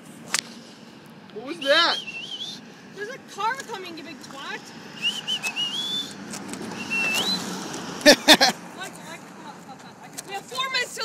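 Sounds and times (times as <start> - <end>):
rising wavering whistle: 1.6 - 2.6, 5.0 - 7.6
burst of laughter: 8.0 - 8.6.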